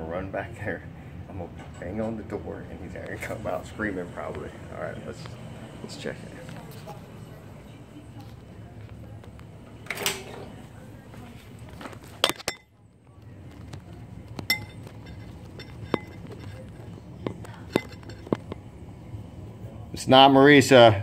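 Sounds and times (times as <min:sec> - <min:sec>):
dishes clinking and knocking: 0:11.8 - 0:12.8, 0:13.5 - 0:18.7.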